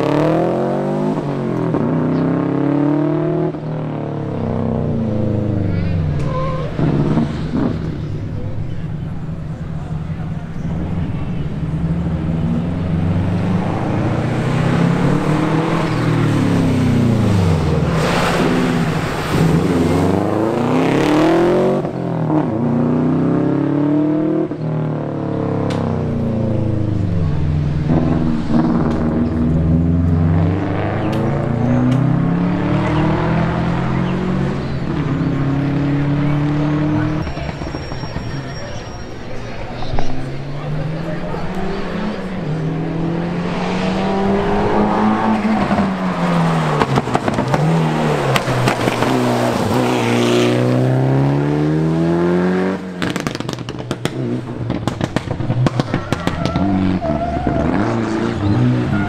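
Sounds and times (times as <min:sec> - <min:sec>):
rally car engine revving: 0:00.0 - 0:59.0
loud rush of noise: 0:04.8 - 0:21.9, 0:32.3 - 0:50.9.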